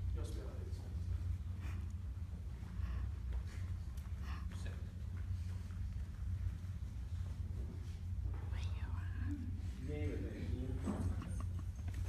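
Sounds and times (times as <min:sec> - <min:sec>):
steady low hum: 0:00.0 - 0:12.0
people murmuring and whispering: 0:08.0 - 0:12.0.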